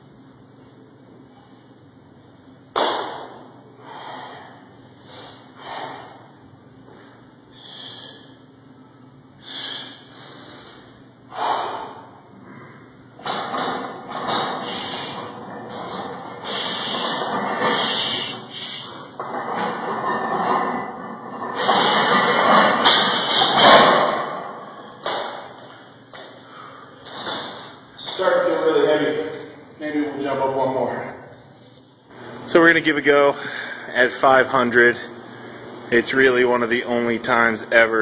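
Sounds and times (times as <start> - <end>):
man breathing hard: 3.8 - 8.5, 9.4 - 13.0, 14.4 - 15.4, 16.4 - 19.2, 26.4 - 27.0.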